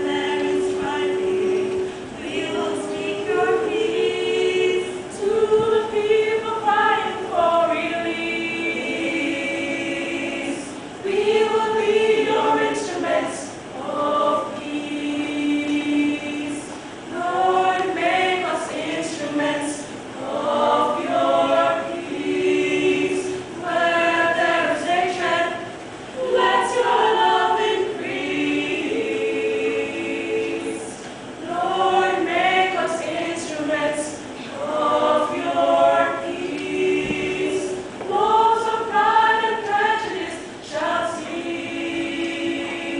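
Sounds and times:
women's choir singing a cappella: 0.0s - 42.9s.

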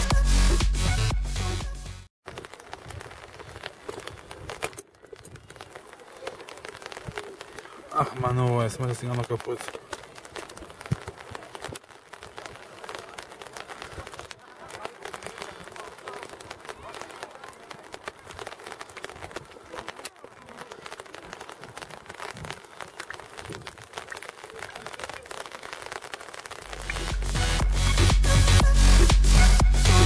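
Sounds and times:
crackling patter: 2.2s - 30.0s
distant voices: 2.3s - 27.4s
people clapping: 2.3s - 30.0s.

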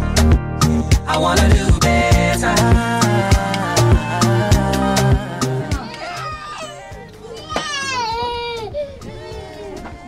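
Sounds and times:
voices: 2.2s - 10.0s
young child crying: 5.7s - 10.0s.

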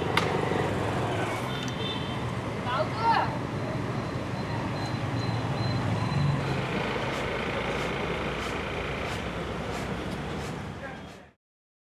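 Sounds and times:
traffic noise: 0.0s - 11.4s
low engine hum: 5.8s - 10.8s.

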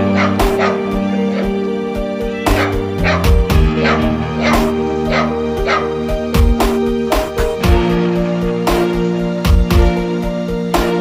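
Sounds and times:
dog barking: 0.0s - 1.6s, 2.4s - 6.0s
music with a steady beat: 0.0s - 11.0s.

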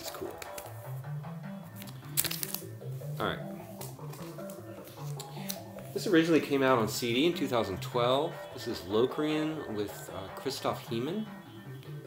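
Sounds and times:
music with low bass line: 0.3s - 12.0s
plastic sleeve crinkling: 1.7s - 2.7s.

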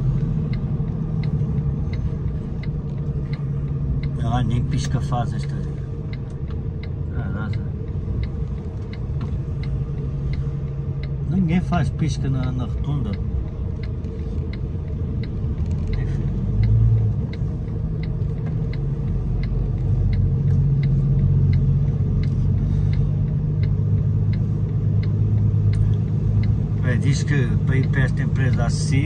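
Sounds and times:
truck diesel engine under load: 0.0s - 29.0s
turn-signal indicator ticking: 0.0s - 29.0s.

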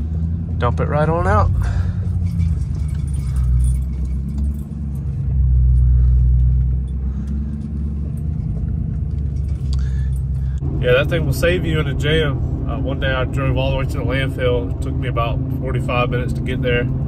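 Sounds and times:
truck engine running: 0.0s - 17.0s.

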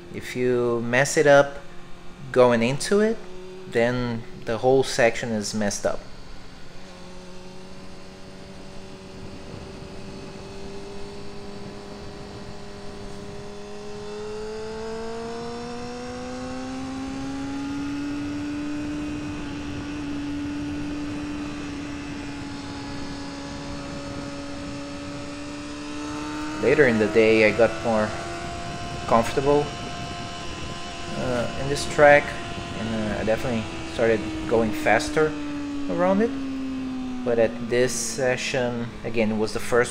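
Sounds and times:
motorcycle engine accelerating: 0.0s - 39.9s
wind rushing over camera: 6.9s - 14.9s, 16.6s - 39.9s.

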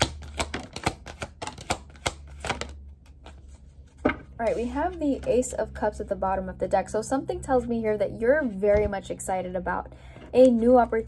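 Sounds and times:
cards being shuffled: 0.0s - 5.5s.

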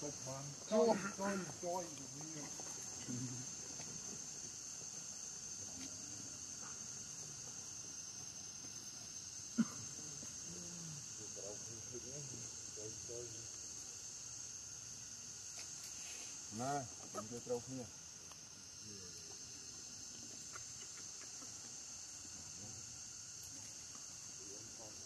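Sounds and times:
insects chirring: 0.0s - 25.0s.

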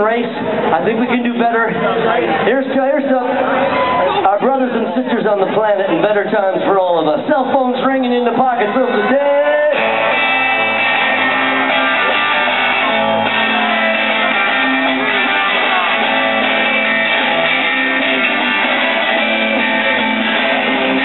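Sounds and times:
strummed electric guitars: 9.0s - 21.0s
drum kit: 9.7s - 21.0s.

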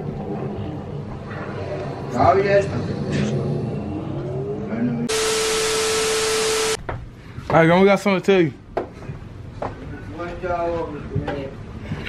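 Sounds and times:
static-like hiss: 5.1s - 6.8s
steady hum-like tone: 5.1s - 6.8s.

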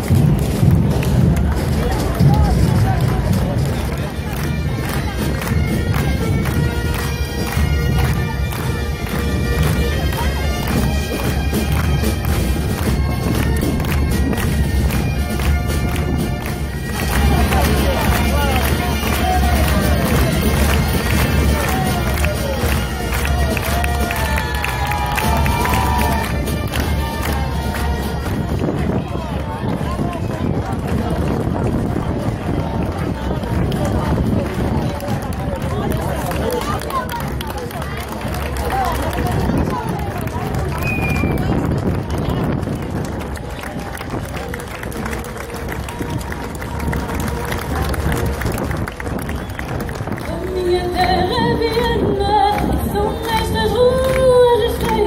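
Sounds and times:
distant music: 0.0s - 28.6s
bagpipe band with drums: 0.0s - 52.0s
crowd chatter: 0.0s - 55.0s.

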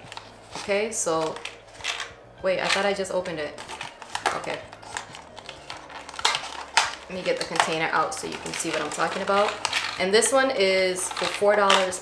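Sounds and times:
box rustling and clicking: 3.5s - 10.1s, 11.0s - 12.0s.

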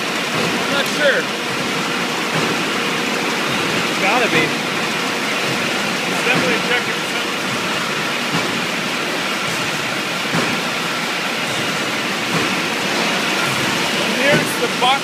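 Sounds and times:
bottling machines working: 0.0s - 15.0s.

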